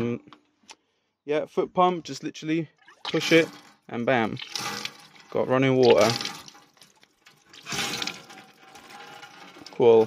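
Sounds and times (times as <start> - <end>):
water splashing into steel sink: 2.9 - 10.0.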